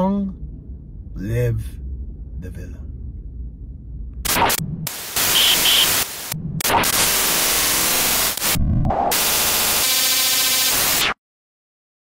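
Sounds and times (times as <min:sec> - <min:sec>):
buzzing tone: 0:04.2 - 0:11.1
white-noise static bursts: 0:04.2 - 0:11.2
short beeps: 0:05.3 - 0:06.0.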